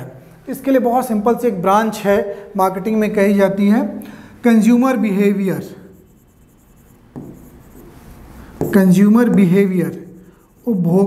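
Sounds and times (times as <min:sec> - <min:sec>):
pen writing on whiteboard: 0:05.0 - 0:11.0
sharp pen scratch: 0:05.0 - 0:11.0.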